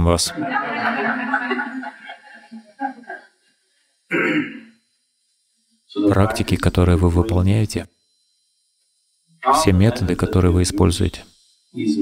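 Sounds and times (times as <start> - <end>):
man clearing his throat: 4.1 - 4.7.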